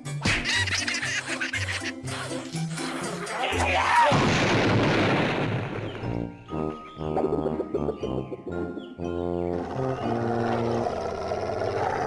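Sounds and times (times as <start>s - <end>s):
cartoon explosion blast: 4.1s - 6.0s
cartoon music: 6.4s - 10.4s.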